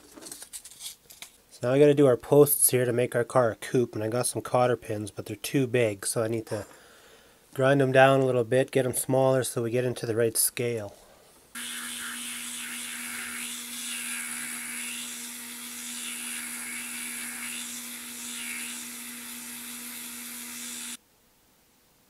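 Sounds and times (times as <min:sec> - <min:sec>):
rotary tool grinding metal: 0:11.6 - 0:21.0.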